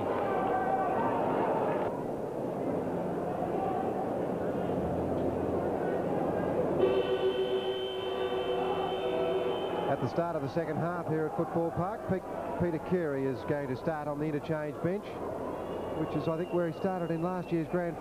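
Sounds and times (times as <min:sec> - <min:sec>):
crowd noise in stands: 0:00.0 - 0:18.0
steady horn-like tone: 0:06.8 - 0:10.1.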